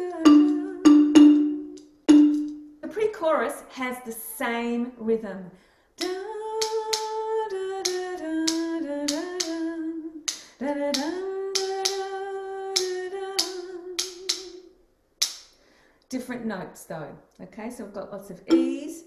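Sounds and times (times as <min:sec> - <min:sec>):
woman singing: 0:00.0 - 0:01.0, 0:06.0 - 0:14.7, 0:18.5 - 0:19.0
sharp rhythmic taps: 0:00.3 - 0:02.6, 0:06.0 - 0:07.2, 0:07.8 - 0:09.6, 0:10.3 - 0:12.1, 0:12.8 - 0:14.5, 0:15.2 - 0:15.5.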